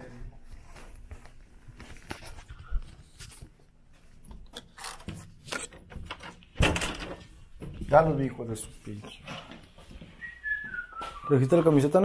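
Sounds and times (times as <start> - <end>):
door opening: 4.4 - 7.8.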